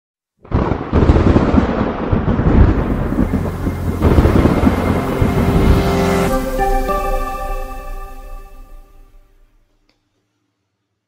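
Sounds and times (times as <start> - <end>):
thunder-like rumbling crackle: 0.4 - 7.3
faint musical tones: 2.8 - 9.6.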